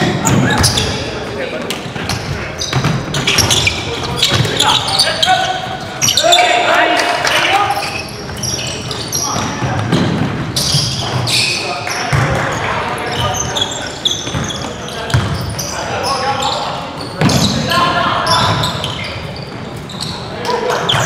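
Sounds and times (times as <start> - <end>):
basketball bouncing on wooden court: 0.0 - 1.0, 2.1 - 4.6, 9.4 - 11.3, 12.1 - 12.6, 14.2 - 15.5
sneaker squeaks: 0.0 - 6.7, 7.3 - 21.0
players shouting: 3.1 - 9.8.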